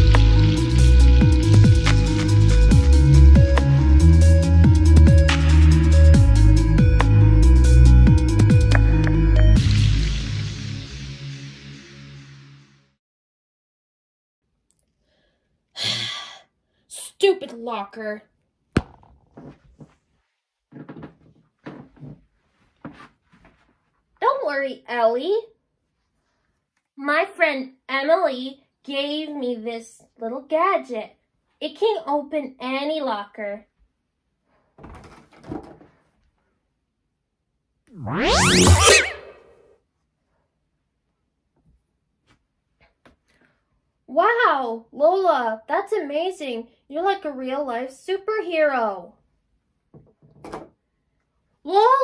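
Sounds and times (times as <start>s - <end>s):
synthesized rising whoosh: 37.9s - 39.7s.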